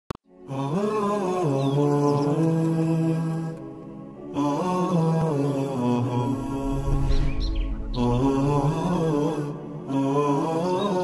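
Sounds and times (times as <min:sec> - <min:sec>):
wordless vocal chant: 0:00.3 - 0:11.0.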